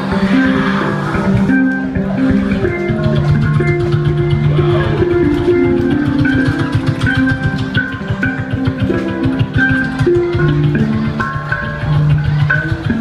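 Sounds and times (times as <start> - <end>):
fast beatbox rhythm: 0.0 - 13.0
handpan melody: 0.0 - 13.0.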